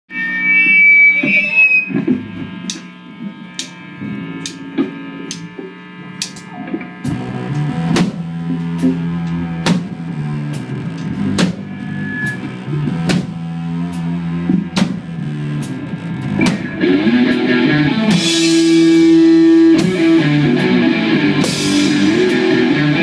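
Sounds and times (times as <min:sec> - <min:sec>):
electric guitar: 0:00.1 - 0:23.0
drum kit beat: 0:01.9 - 0:23.0
live rock band playing: 0:06.4 - 0:23.0.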